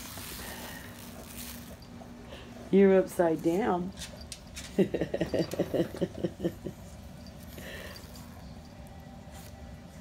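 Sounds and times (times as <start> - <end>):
hand rubbing dog fur: 0.0 - 4.7.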